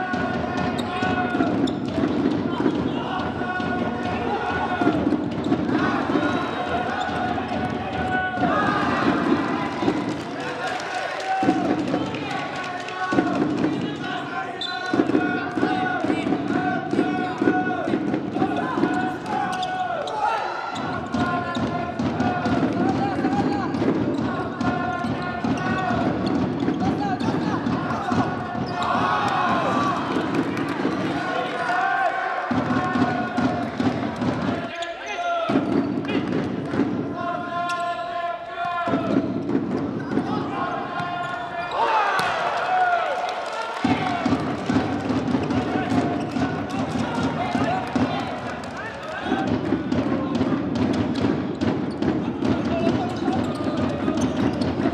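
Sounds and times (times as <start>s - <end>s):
voices in a hall: 0.0s - 54.9s.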